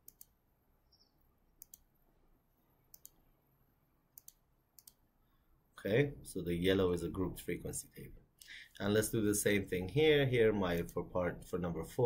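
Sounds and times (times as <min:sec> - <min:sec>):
computer mouse clicking: 0:00.0 - 0:00.4, 0:01.6 - 0:01.9, 0:02.9 - 0:03.2, 0:04.2 - 0:05.0.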